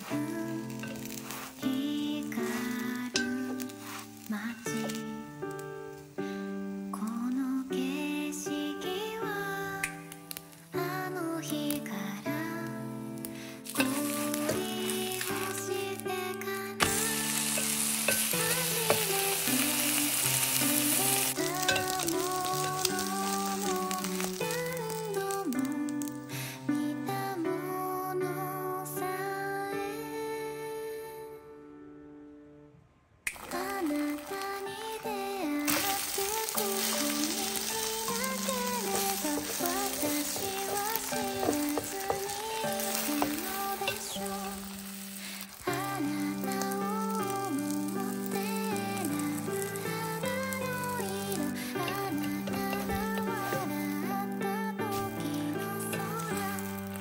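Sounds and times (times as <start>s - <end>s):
food sizzling in pan: 0.0s - 26.7s, 33.3s - 57.0s
background music: 0.0s - 32.6s, 33.3s - 57.0s.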